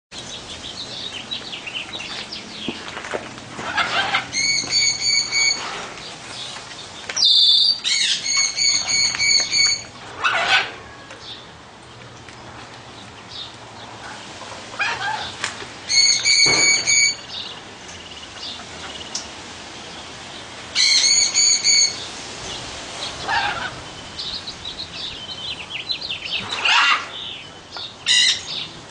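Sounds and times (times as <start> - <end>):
harsh parrot squawks: 3.6 - 5.8, 15.9 - 17.2, 20.8 - 22.0, 26.6 - 27.1
parrots calling in clear notes: 3.6 - 6.0, 7.2 - 11.4, 14.7 - 17.6, 20.8 - 22.1, 23.1 - 24.4, 26.1 - 28.7.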